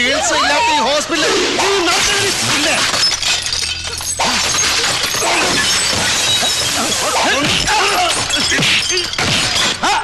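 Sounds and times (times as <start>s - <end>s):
glass shattering: 1.7s - 10.0s
equipment crashing: 1.9s - 9.9s.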